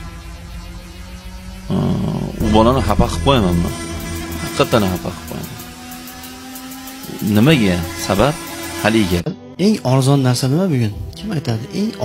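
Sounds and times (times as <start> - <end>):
soft music of held tones: 2.4 - 12.0.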